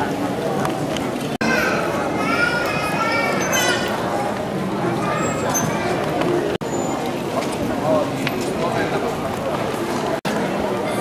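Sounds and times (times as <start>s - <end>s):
murmur of many people chatting: 0.0s - 11.0s
children's voices: 1.2s - 6.6s.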